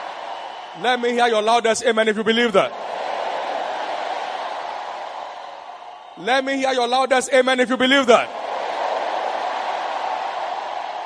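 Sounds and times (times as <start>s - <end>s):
congregation shouting and cheering: 0.0s - 11.0s.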